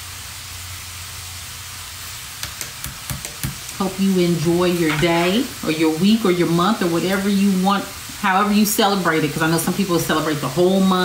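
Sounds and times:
food frying sizzle: 0:00.0 - 0:11.0.

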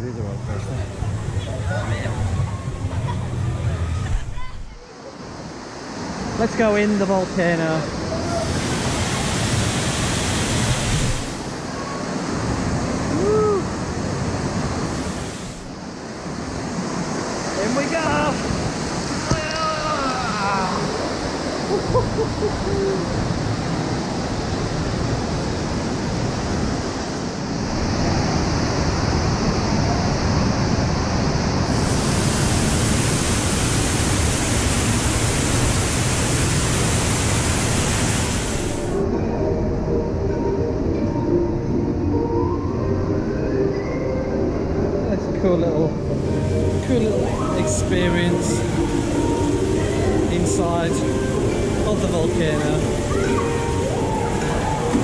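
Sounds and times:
waterfall rushing: 0:04.9 - 0:39.1, 0:46.1 - 0:55.0
voices calling out: 0:17.7 - 0:23.4.

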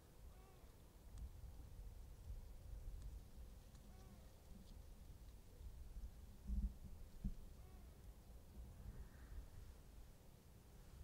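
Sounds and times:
faint low rumble: 0:00.0 - 0:11.0
distant animal calls: 0:00.3 - 0:00.7, 0:07.5 - 0:08.0
soft ticks: 0:00.6 - 0:01.3, 0:02.2 - 0:05.7.

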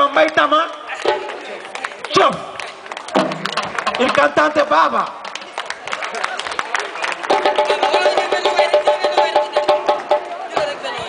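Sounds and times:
sharp percussion taps: 0:03.1 - 0:05.2, 0:07.3 - 0:10.7
live band playing: 0:07.3 - 0:11.0.

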